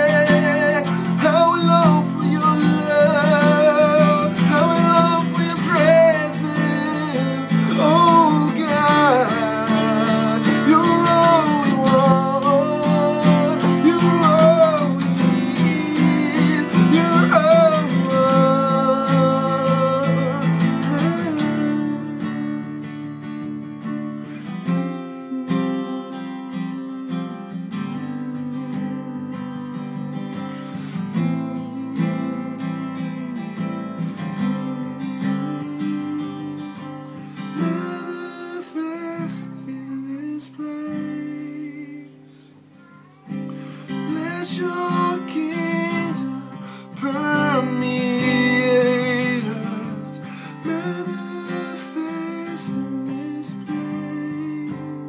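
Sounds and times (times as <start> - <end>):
person singing: 0.0 - 23.3, 24.2 - 55.0
strummed acoustic guitar: 0.0 - 55.0.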